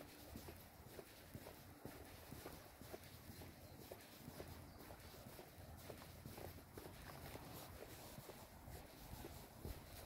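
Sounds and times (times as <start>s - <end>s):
footsteps on dirt path: 0.0s - 10.0s.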